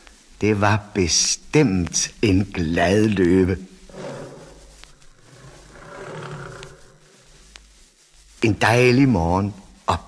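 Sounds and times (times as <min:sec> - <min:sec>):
lion growl: 0:03.9 - 0:07.4.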